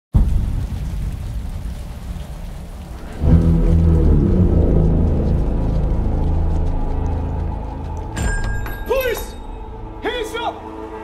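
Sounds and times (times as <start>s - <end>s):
rain hiss: 0.2s - 8.1s
low rumble: 0.2s - 10.0s
deep sustained music tones: 3.0s - 11.0s.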